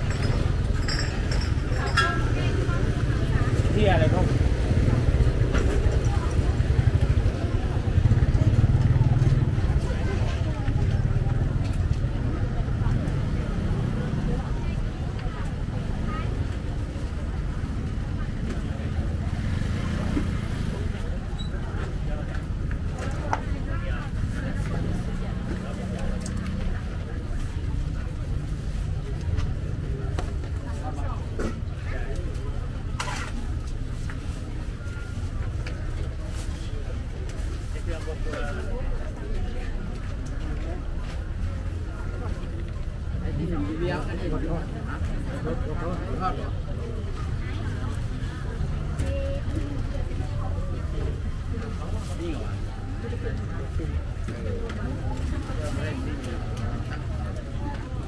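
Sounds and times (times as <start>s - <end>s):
many people talking: 0.0s - 58.0s
voices of shoppers and vendors: 0.0s - 58.0s.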